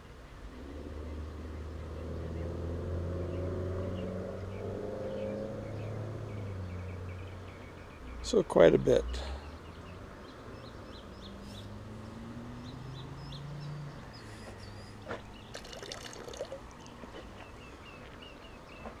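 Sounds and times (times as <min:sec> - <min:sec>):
birds chirping: 0:00.3 - 0:19.0.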